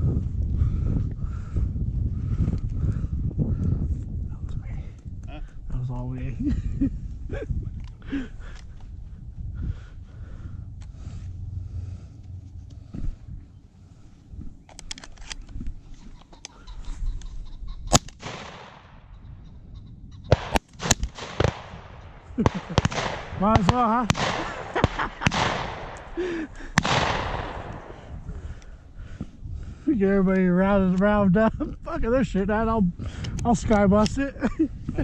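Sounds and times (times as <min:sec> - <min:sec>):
gunshot echo: 0:17.9 - 0:19.1, 0:20.3 - 0:28.4
distant gunshots: 0:17.9 - 0:19.2, 0:20.3 - 0:28.5
shotgun shots: 0:17.9 - 0:19.2, 0:20.3 - 0:28.3.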